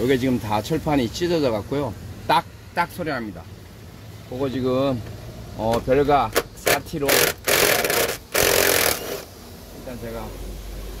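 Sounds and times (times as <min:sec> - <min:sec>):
electric drill-driver whirring: 0:07.1 - 0:09.3.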